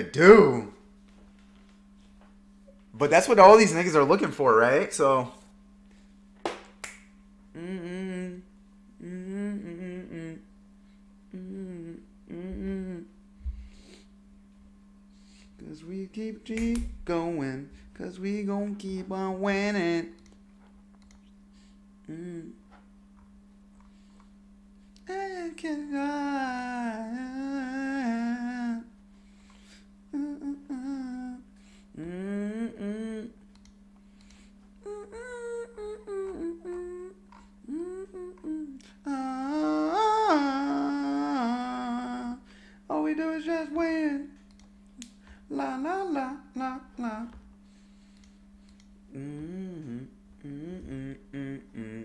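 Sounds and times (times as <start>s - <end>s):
sharp snaps: 6.4s - 7.2s, 16.5s - 16.9s, 44.4s - 45.3s
man humming a melody: 7.5s - 10.6s, 11.3s - 14.0s, 22.0s - 22.8s, 25.0s - 29.0s, 30.1s - 33.6s, 34.8s - 47.5s, 49.1s - 52.0s.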